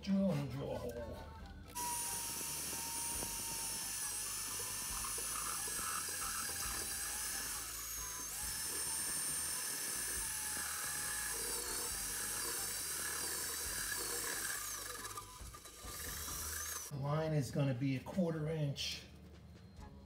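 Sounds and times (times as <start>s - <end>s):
electric drill cutting sheet metal: 1.7s - 16.9s.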